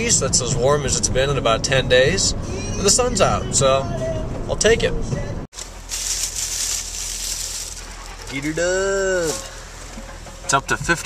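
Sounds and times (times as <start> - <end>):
plastic bag crinkling: 5.6 - 8.6.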